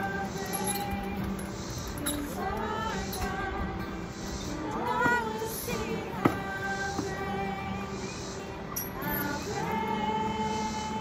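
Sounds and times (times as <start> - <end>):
voices singing worship song: 0.0 - 11.0.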